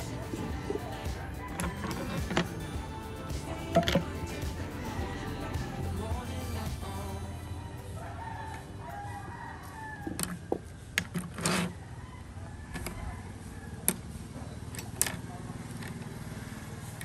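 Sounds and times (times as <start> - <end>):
rooster crowing: 0.0 - 2.8, 7.9 - 10.8, 11.5 - 14.2.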